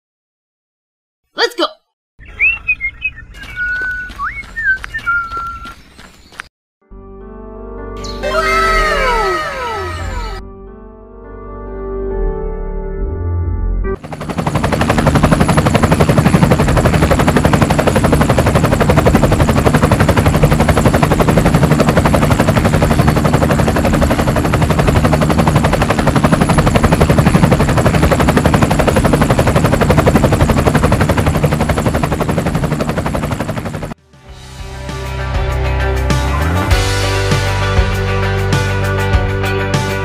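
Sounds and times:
helicopter rotor chopping: 14.0 - 34.0.

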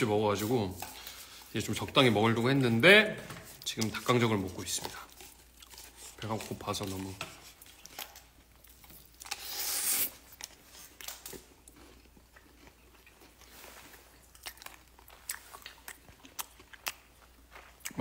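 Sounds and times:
biting and chewing crispy chicken: 3.6 - 18.0.

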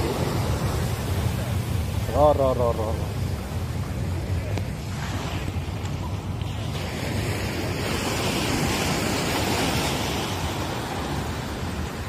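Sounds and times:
waves breaking on a beach: 0.0 - 12.0
wind rumble on microphone: 0.0 - 12.0.

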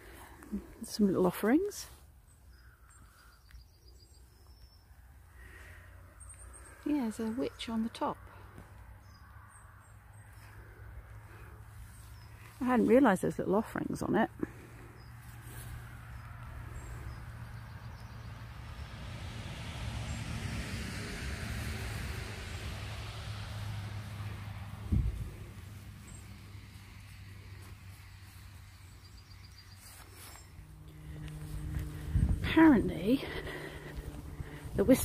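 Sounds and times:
vehicle passing by: 4.9 - 35.0
steady low hum: 22.0 - 35.0.

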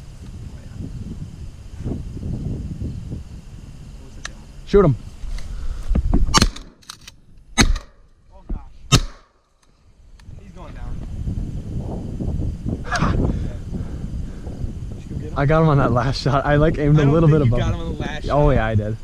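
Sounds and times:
wind rumbling on microphone: 0.0 - 7.6, 9.8 - 19.0
shotgun shots: 6.3 - 6.8, 7.6 - 8.0, 8.9 - 9.4.

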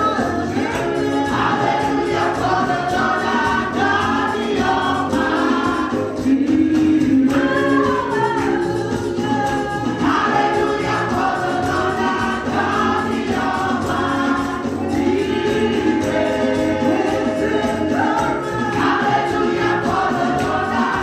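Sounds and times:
women's choir singing: 0.0 - 21.0.

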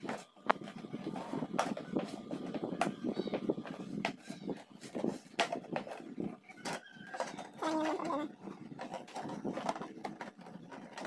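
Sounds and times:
plastic container clicking and knocking: 0.0 - 11.0.

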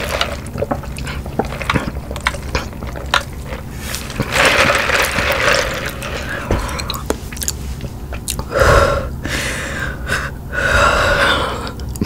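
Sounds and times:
wet mouth clicks eating: 6.8 - 7.6
breathy swells: 8.4 - 11.8.

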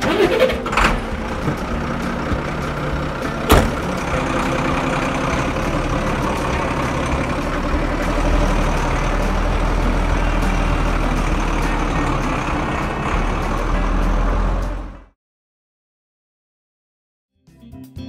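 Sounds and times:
heavy truck engine rumbling: 0.0 - 15.2.

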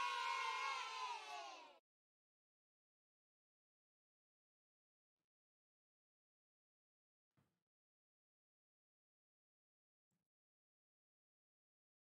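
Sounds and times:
children cheering: 0.0 - 1.8.

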